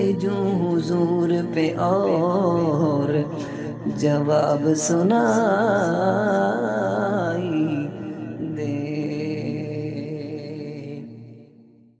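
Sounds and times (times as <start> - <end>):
wordless vocal drone with echo: 0.0 - 11.9.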